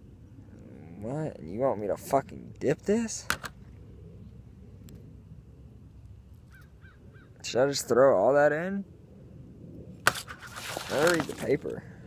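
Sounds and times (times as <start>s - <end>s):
steady low rumble: 0.0s - 12.0s
bird calling: 6.5s - 7.4s.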